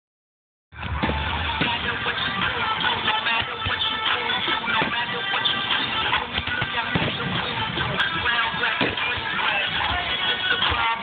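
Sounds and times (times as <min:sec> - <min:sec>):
crowd noise: 0:00.7 - 0:11.0.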